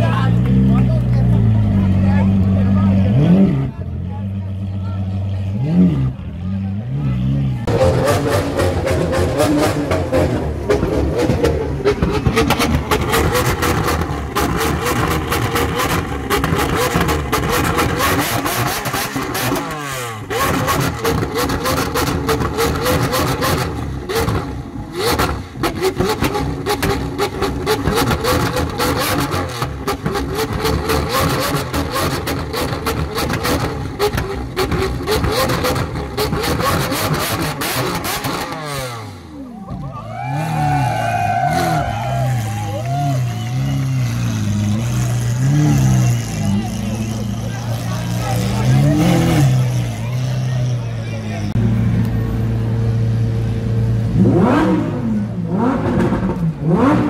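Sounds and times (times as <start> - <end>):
sports car engine revving: 0.0 - 39.5, 40.4 - 57.0
car engine idling: 39.2 - 54.2.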